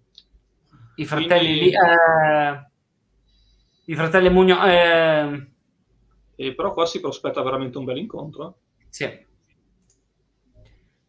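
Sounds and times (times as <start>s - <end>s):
man speaking a word: 1.0s - 2.6s.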